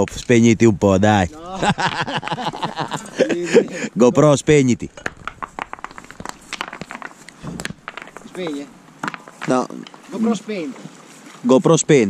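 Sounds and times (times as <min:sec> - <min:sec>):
footsteps crunching on gravel: 0:04.9 - 0:11.3.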